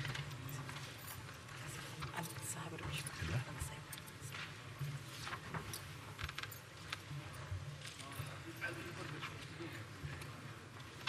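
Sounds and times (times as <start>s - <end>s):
small clicks and rattles: 0.0s - 11.0s.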